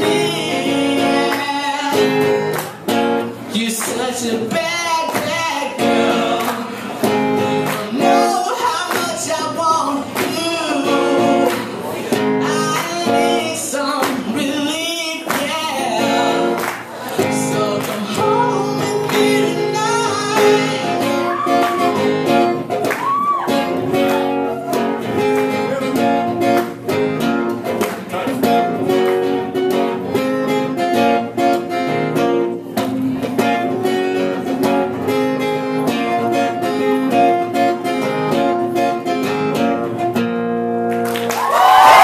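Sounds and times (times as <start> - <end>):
person singing: 0.0 - 2.7, 3.5 - 26.4
acoustic guitar strumming: 0.0 - 41.3
audience cheering: 21.1 - 22.2, 22.8 - 25.0, 41.1 - 42.0.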